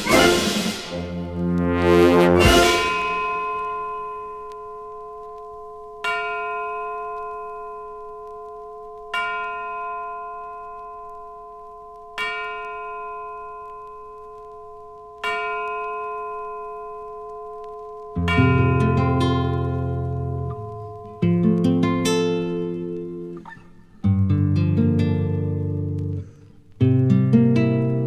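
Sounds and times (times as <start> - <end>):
brass chord: 0.0 - 3.8
bell-like tone ringing: 2.4 - 23.6.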